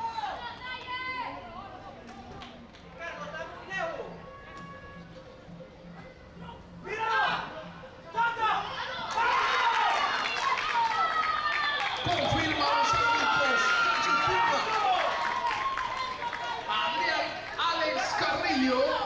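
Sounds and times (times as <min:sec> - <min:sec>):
high voices shouting and cheering: 0:06.0 - 0:19.0.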